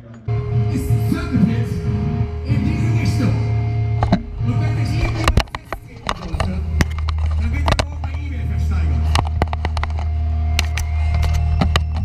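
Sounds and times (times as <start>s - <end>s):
amplifier hum: 0.2s - 12.0s.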